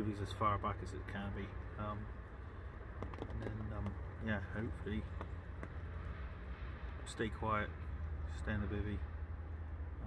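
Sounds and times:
low wind rumble: 0.0 - 10.0.

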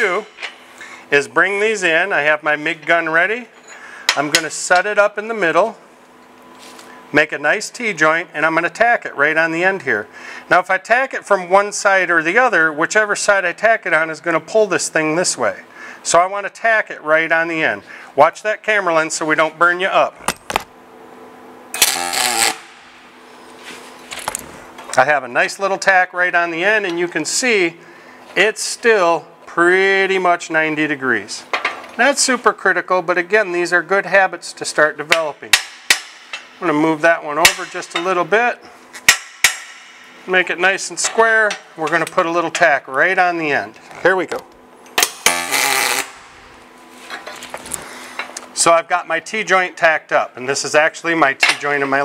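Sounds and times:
steady hum: 0.0 - 52.0
welding arc strike click: 21.8 - 23.0
welding arc crackling: 21.8 - 23.1, 45.2 - 46.6.

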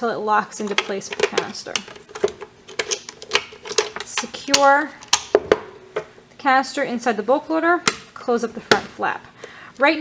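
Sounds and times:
plastic clicks and knocks: 0.7 - 6.1.

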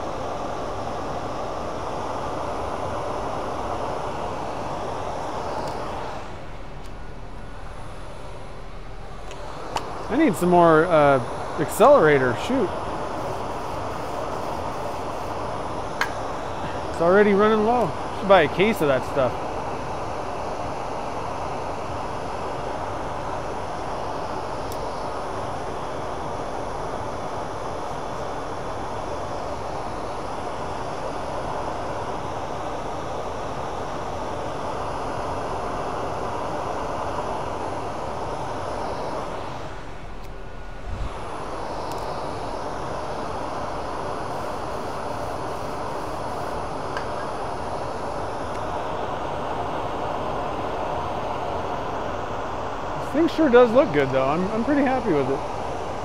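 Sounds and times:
lathe running: 36.8 - 56.0.

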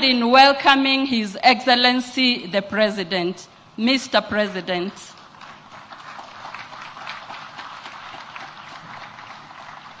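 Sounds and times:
audience applauding: 5.2 - 10.0.

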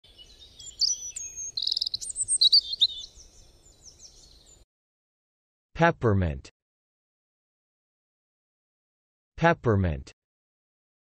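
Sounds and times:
songbird singing: 0.0 - 4.6.

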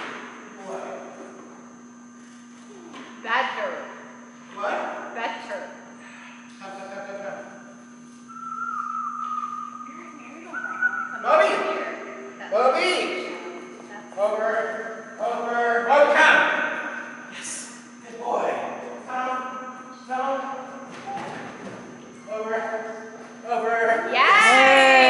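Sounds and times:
steady low hum: 0.0 - 25.0
man calling out: 10.5 - 13.1.

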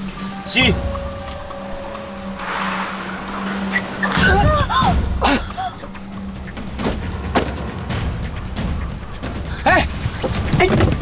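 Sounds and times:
low background music drone: 0.0 - 11.0
car tyres hissing on wet road: 2.0 - 5.3.

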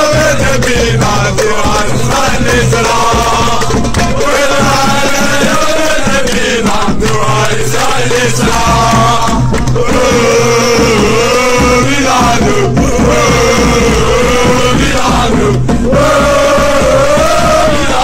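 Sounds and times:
male voices chanting in unison: 0.0 - 18.0.

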